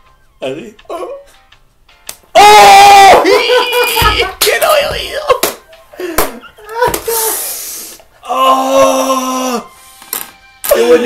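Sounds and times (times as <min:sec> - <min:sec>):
person talking: 0:03.3 - 0:05.4.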